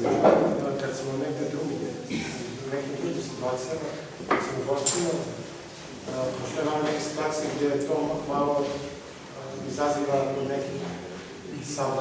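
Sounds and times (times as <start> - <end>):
speech: 0.0 - 12.0.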